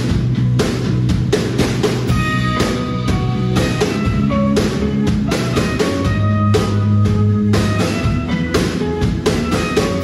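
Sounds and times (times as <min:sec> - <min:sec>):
bass drum and cymbal hits: 0:00.0 - 0:10.0
rock band playing live: 0:00.0 - 0:10.0.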